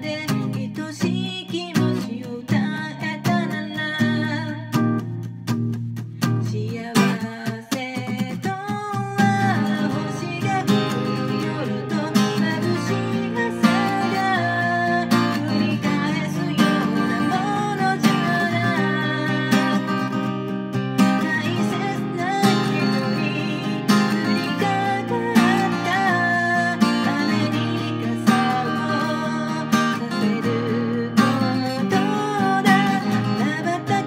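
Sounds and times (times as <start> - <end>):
person singing: 0.0 - 4.7, 6.4 - 34.0
acoustic guitar strumming: 0.0 - 34.0.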